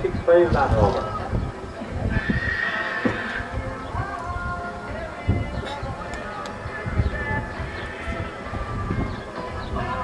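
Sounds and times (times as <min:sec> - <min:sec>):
horse whinnying: 0:02.1 - 0:03.6.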